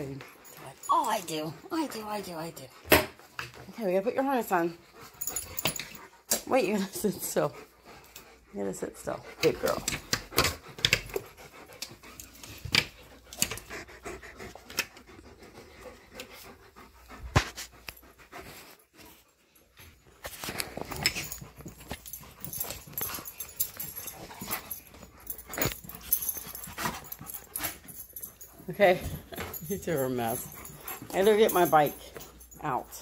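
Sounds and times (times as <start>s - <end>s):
dogs panting: 0.0s - 33.0s.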